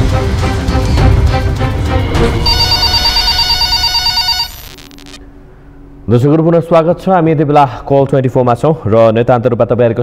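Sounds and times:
jingle music: 2.2s - 4.8s
electronic telephone ring: 2.4s - 5.2s.

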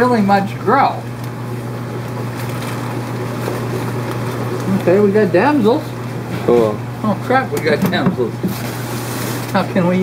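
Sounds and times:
aquarium equipment hum and hiss: 0.0s - 10.0s.

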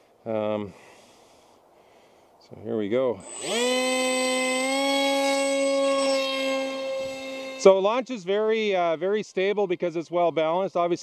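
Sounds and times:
electric motor propeller whine: 3.2s - 7.8s.

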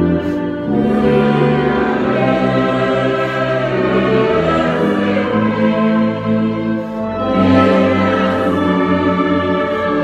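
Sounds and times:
congregation singing: 0.0s - 10.0s
instrumental ensemble: 0.0s - 10.0s.

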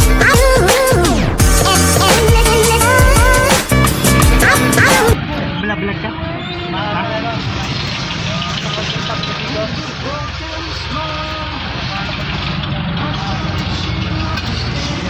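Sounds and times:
vehicle engine rumble and road noise: 2.8s - 15.0s
people talking: 4.4s - 15.0s.

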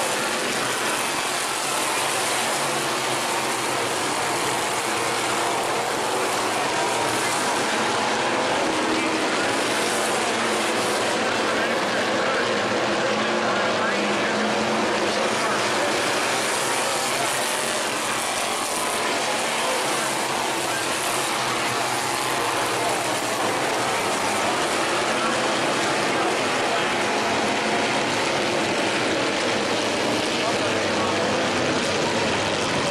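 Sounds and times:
race car engines: 0.0s - 32.9s.

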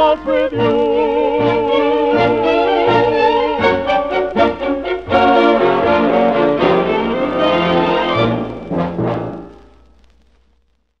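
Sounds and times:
timpani: 0.0s - 9.7s
brass dance orchestra: 0.0s - 9.8s.

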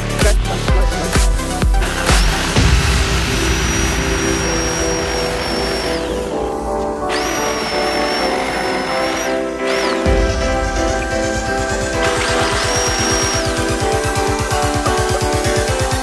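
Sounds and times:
background music with steady beat: 0.0s - 16.0s
reciprocating saw cutting wood: 1.8s - 16.0s.

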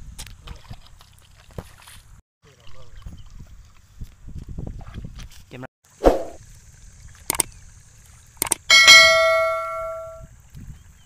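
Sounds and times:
wind rumble on microphone: 2.8s - 5.6s, 10.1s - 11.0s.

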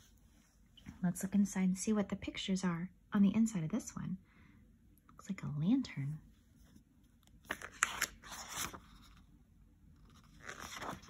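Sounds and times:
book pages turning: 7.2s - 9.3s, 10.0s - 11.0s.

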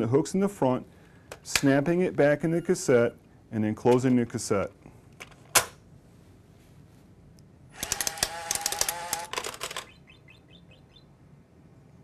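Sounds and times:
machine whirring with rapid clicking: 7.8s - 10.0s.

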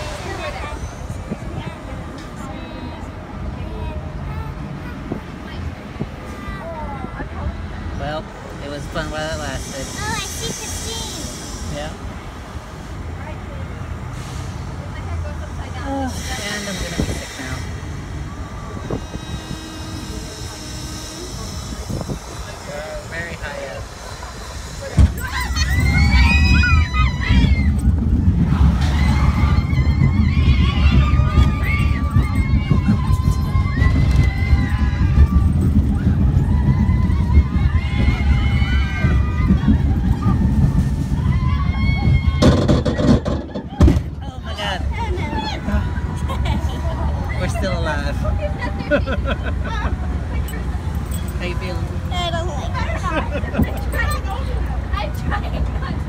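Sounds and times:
wind buffeting microphone: 0.0s - 3.4s, 16.1s - 56.0s
amusement ride rumbling: 0.0s - 56.0s
faint voices: 0.0s - 56.0s.

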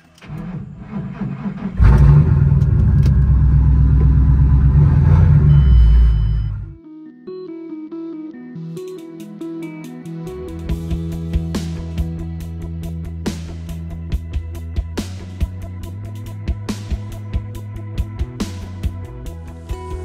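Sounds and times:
car engine starting and rumbling: 0.0s - 6.8s.

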